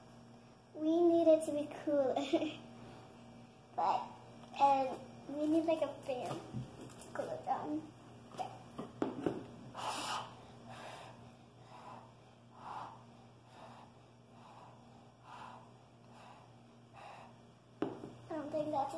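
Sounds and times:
child blowing breathy puffs: 9.7 - 17.4.

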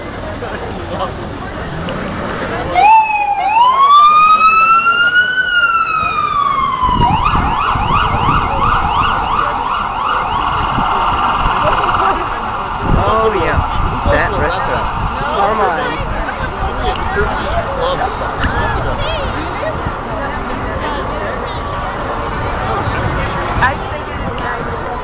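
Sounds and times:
crowd noise: 0.0 - 25.0
street traffic: 0.0 - 25.0
ambulance siren: 2.7 - 16.0.

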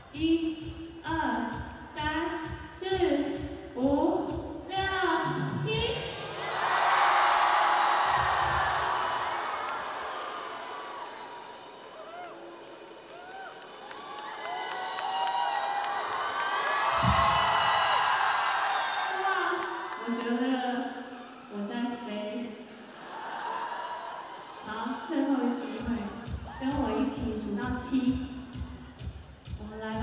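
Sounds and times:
crowd cheering and screaming: 6.1 - 27.1
shrill whoops: 6.8 - 20.0.

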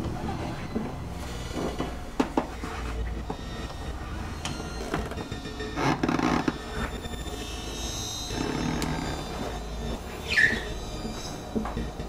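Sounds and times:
horror film score: 3.3 - 12.0
loud squeal sliding down: 10.2 - 11.4.

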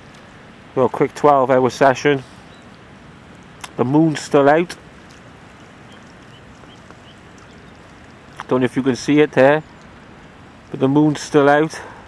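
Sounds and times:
wind rumble on microphone: 0.0 - 11.6
wind over open water: 0.0 - 12.0.

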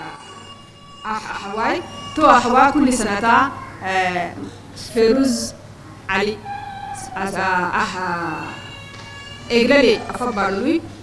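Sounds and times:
woman speaking into a microphone: 1.0 - 8.6, 9.5 - 10.9.

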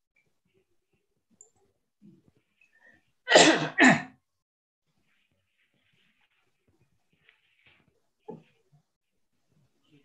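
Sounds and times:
person sneezing loudly: 3.3 - 4.2.

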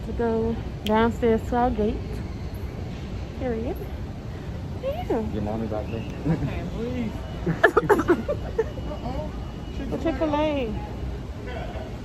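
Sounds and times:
people laughing: 6.2 - 9.3.

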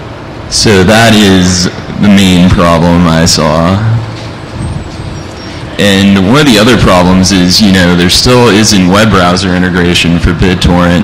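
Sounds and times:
low rumbling room noise: 0.0 - 11.0
man speaking: 0.5 - 4.1, 5.5 - 11.0.

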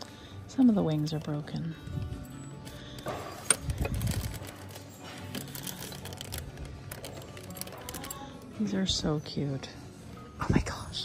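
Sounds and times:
store background music: 0.0 - 11.0
plastic bags crinkling: 2.8 - 8.4.

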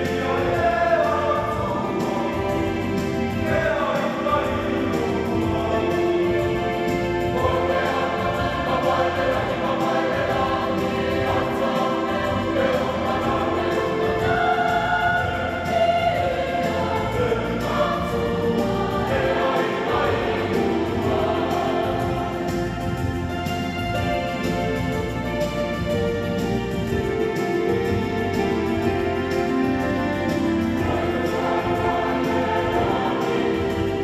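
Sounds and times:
mixed choir singing a hymn: 0.0 - 34.0.

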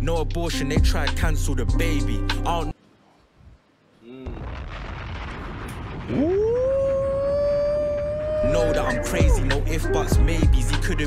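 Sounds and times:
rumbling swell of noise: 4.2 - 9.1
deep boom: 4.3 - 11.0.

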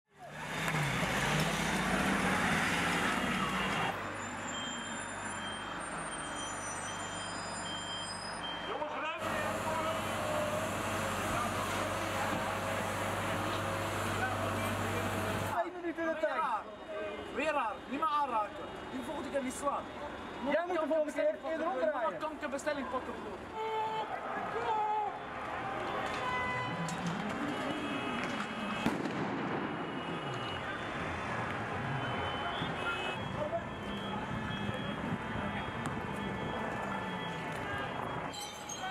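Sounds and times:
street noise: 0.1 - 38.9
short repeated beeps: 4.5 - 8.8
voices: 8.7 - 28.9
heavy truck engine running: 9.2 - 15.6
firecracker bang: 28.2 - 30.6.

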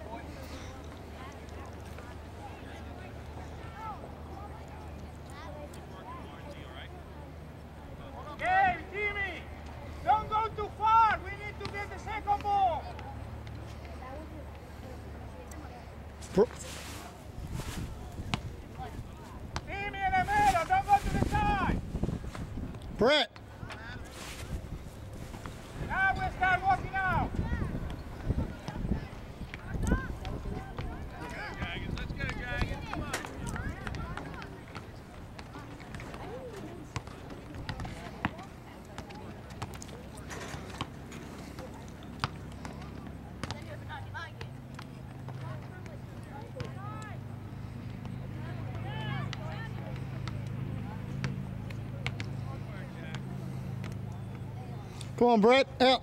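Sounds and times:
distant shouts and calls: 7.0 - 14.0, 25.6 - 37.0, 38.5 - 56.0.

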